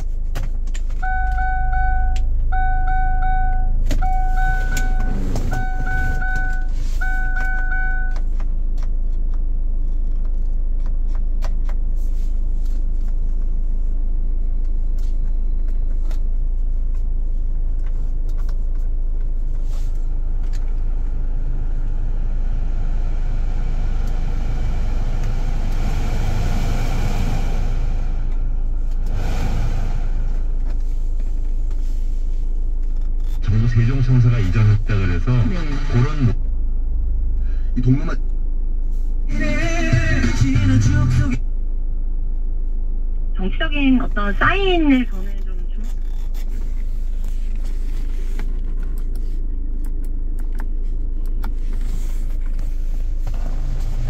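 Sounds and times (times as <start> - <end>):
car engine idling: 0.0 - 45.3, 46.0 - 54.0
warning chime beeping: 1.0 - 8.2
faint car radio: 30.6 - 36.5, 37.8 - 38.4, 39.3 - 41.4, 43.3 - 54.0.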